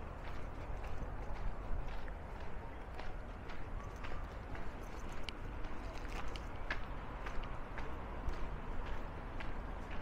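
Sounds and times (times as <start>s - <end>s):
footsteps on paved path: 0.0s - 10.0s.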